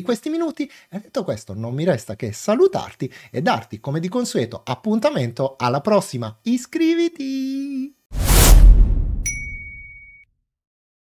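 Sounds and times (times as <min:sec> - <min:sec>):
deep whoosh: 0:08.2 - 0:09.8
bright ding: 0:09.2 - 0:10.2.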